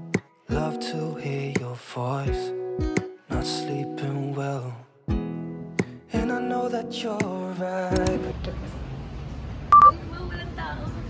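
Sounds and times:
short electronic beep: 0:09.7 - 0:09.9.

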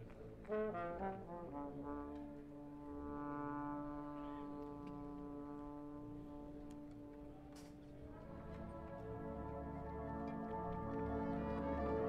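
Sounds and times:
horn line sustained chord: 0:00.5 - 0:12.0.

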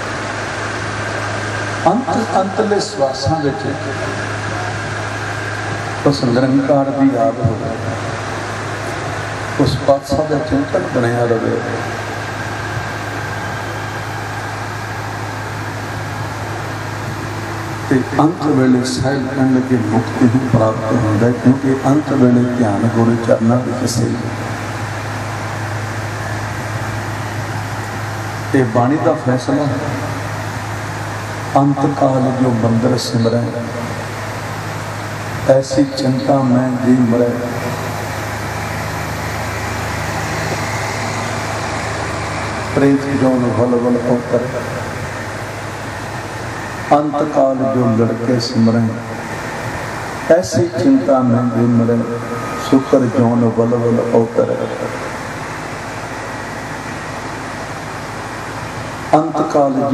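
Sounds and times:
electric fans whooshing: 0:00.0 - 0:59.9
low hum: 0:00.0 - 0:59.9
low steady drone: 0:00.0 - 0:59.9.

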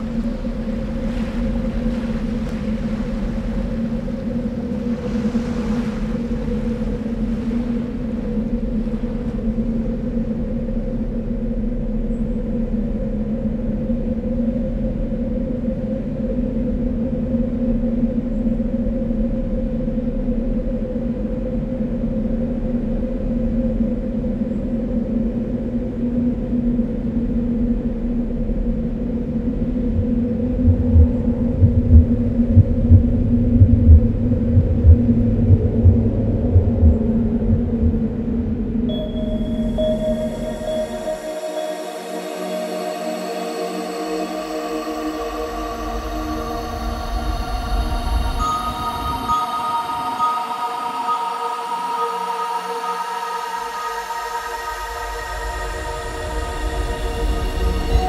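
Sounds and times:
sea waves washing: 0:00.0 - 0:11.4, 0:29.6 - 0:58.0
ambient drone low tones: 0:00.0 - 0:58.0.

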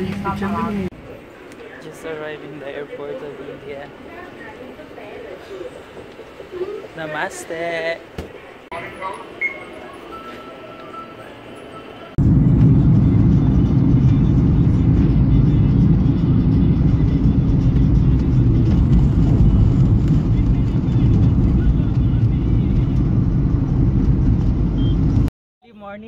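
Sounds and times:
car road and engine rumble: 0:10.9 - 0:25.3.

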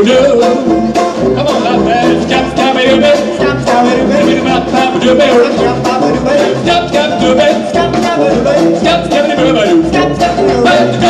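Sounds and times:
banjo strumming: 0:00.0 - 0:11.0
jazz band playing: 0:00.0 - 0:11.0.

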